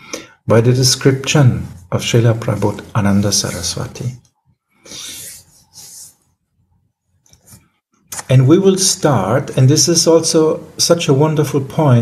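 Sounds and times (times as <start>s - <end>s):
hands rubbing together: 4.9s - 6.3s.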